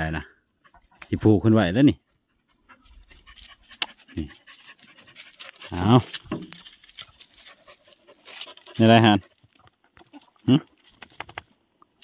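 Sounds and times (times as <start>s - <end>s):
dog panting: 2.0s - 6.2s, 6.9s - 10.1s
dry leaves crackling: 3.0s - 9.4s.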